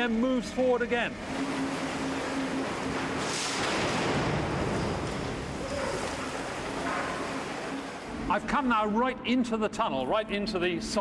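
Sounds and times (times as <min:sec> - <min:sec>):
construction machinery rushing noise: 0:00.1 - 0:08.5.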